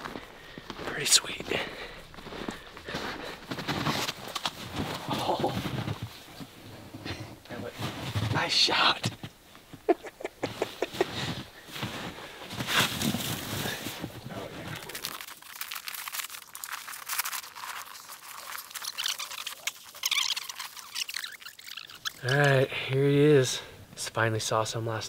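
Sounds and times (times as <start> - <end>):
boots crunching in snow: 0.0 - 6.2, 10.8 - 14.7
clothing rustle: 10.6 - 19.1.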